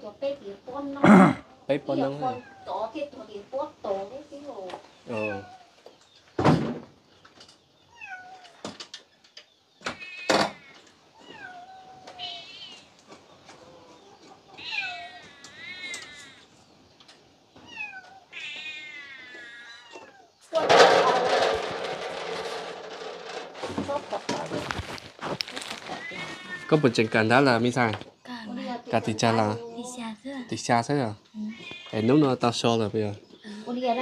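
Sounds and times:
cat meowing: 2.0s - 2.9s, 5.1s - 5.7s, 7.9s - 8.6s, 9.9s - 12.9s, 14.6s - 16.4s, 17.6s - 20.4s, 25.8s - 27.2s, 31.4s - 32.4s.

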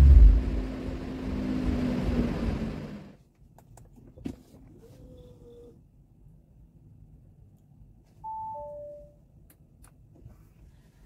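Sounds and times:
two-note electronic chime: 8.3s - 9.2s.

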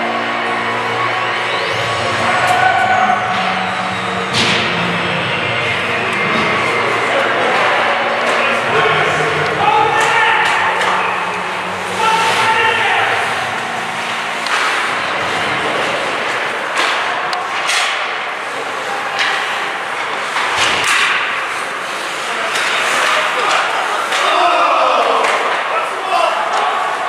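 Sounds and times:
spectators calling out: 0.0s - 17.6s
sticks and puck clacking: 2.2s - 27.0s.

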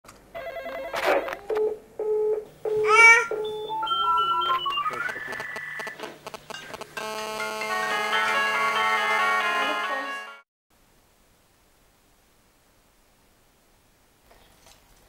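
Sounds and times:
electronic beeps and sliding tones: 3.5s - 7.8s
sustained musical chord: 7.0s - 10.4s.

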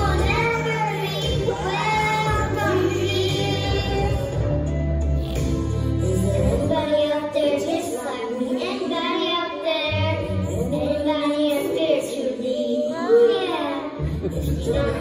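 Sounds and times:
girl singing into a microphone: 0.0s - 4.4s, 6.1s - 15.0s
backing music: 0.0s - 8.8s, 14.0s - 15.0s.

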